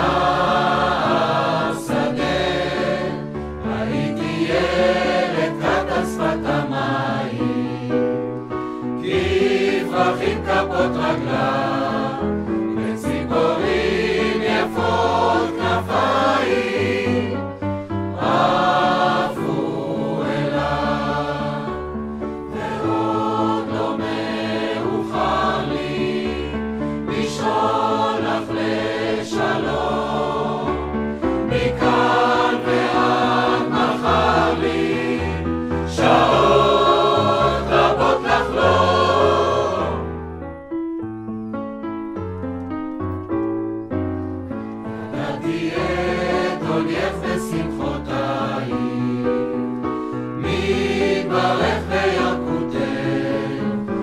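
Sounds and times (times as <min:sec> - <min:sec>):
mixed choir singing: 0:00.0 - 0:40.3, 0:44.8 - 0:54.0
piano accompaniment: 0:00.0 - 0:54.0.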